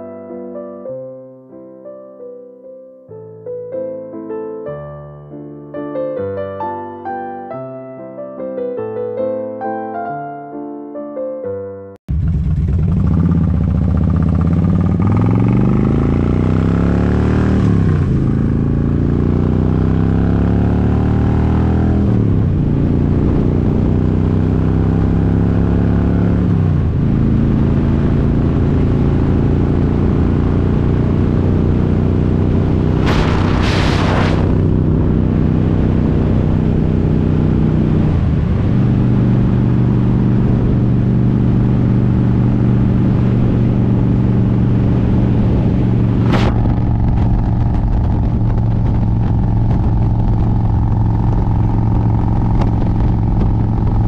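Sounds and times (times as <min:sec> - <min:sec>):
motorcycle engine accelerating: 0:12.1 - 0:54.0
wind rushing: 0:32.7 - 0:36.8, 0:44.5 - 0:54.0
brief hiss: 0:33.0 - 0:34.6.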